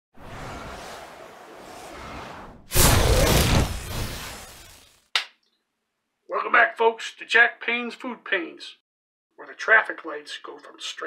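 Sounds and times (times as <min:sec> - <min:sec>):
loud whoosh: 0:00.2 - 0:04.6.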